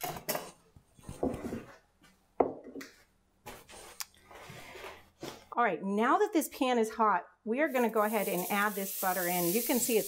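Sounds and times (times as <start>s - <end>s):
dishes knocking on wooden countertop: 2.4s - 2.8s.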